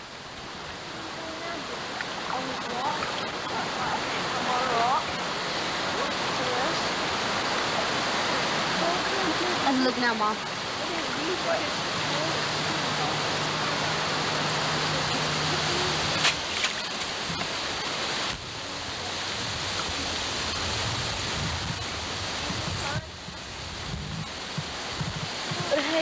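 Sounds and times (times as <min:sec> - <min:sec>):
creek water rushing: 0:00.0 - 0:26.0.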